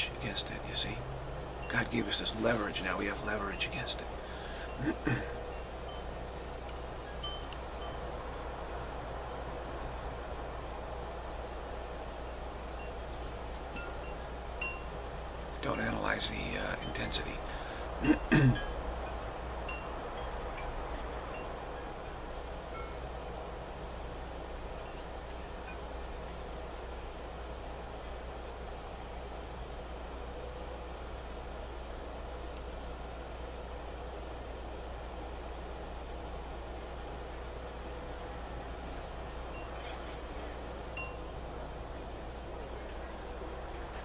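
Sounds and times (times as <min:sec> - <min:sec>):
background hiss: 0:00.0 - 0:44.0
faint high tinkles: 0:07.1 - 0:08.3, 0:39.5 - 0:41.9.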